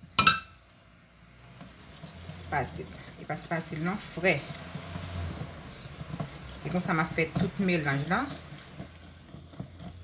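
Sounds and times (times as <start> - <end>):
utensil clinking glass bowl: 0.2 - 0.6.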